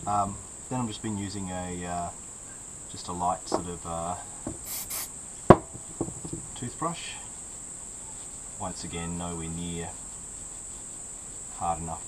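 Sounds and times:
cricket chirring: 0:00.0 - 0:12.0
aerosol spray hissing: 0:04.5 - 0:05.1.

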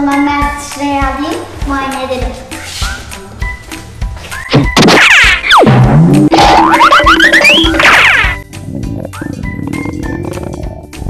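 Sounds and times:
children's background music: 0:00.0 - 0:11.0
cartoon falling pitch glide: 0:04.8 - 0:08.4
rising run of tones: 0:06.5 - 0:08.4.

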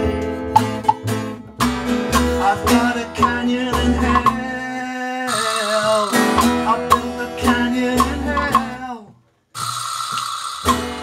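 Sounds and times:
live band playing: 0:00.0 - 0:04.4, 0:05.3 - 0:08.8.

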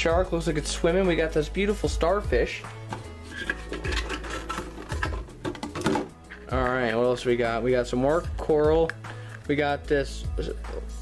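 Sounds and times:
plastic toys clattering in bucket: 0:03.3 - 0:06.5.

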